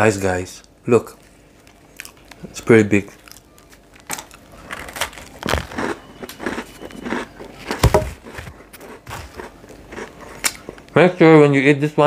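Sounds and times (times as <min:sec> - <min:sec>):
man chewing crunchy biscuit: 0:01.2 - 0:11.0.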